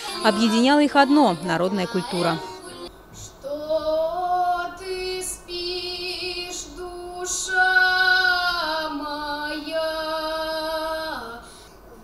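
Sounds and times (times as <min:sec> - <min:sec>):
boy singing folk song: 0:00.0 - 0:12.0.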